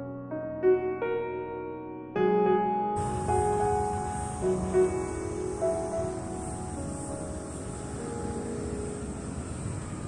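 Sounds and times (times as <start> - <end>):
soft piano music: 0.0 - 10.0
low outdoor rumble: 3.0 - 10.0.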